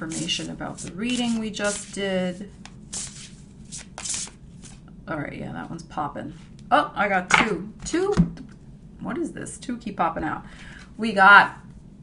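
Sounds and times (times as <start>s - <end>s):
cards being shuffled: 0.1s - 2.0s, 2.6s - 4.8s.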